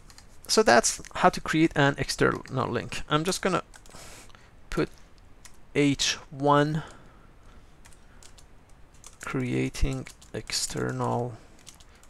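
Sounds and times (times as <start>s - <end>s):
faint keyboard typing: 0.0s - 5.6s, 6.8s - 12.0s.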